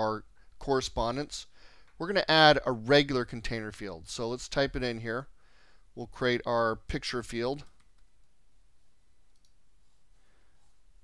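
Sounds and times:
computer mouse click: 7.6s - 8.4s, 9.3s - 9.6s.

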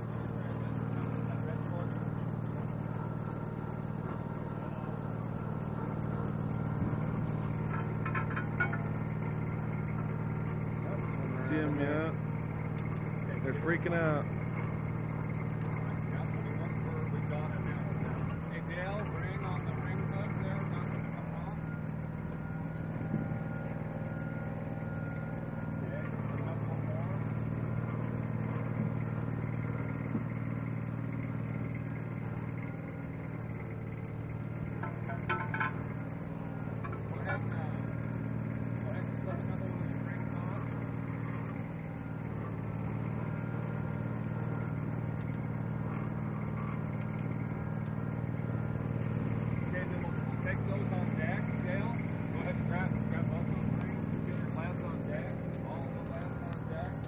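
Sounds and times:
boat engine humming: 0.0s - 57.0s.

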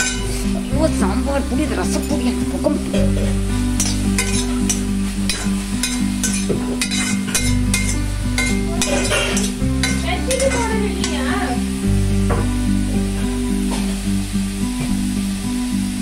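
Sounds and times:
metal spatula scraping pan: 0.0s - 0.6s, 3.0s - 11.4s
background music with bass: 0.0s - 16.0s
food sizzling: 0.0s - 16.0s.

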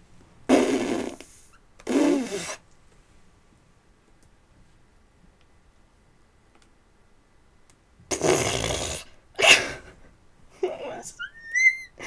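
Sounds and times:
woman high squeal: 11.2s - 12.0s.

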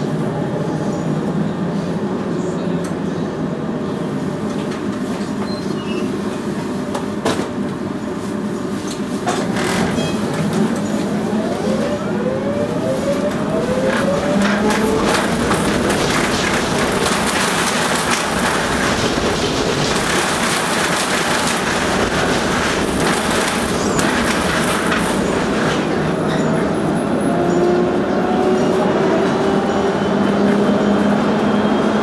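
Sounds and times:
wheels rumbling on rails: 0.0s - 32.0s
clicks of tram wheels: 8.8s - 26.8s.

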